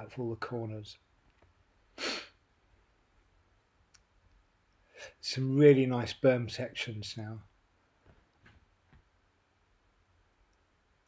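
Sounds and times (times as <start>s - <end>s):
person short sharp breath: 2.0s - 2.4s.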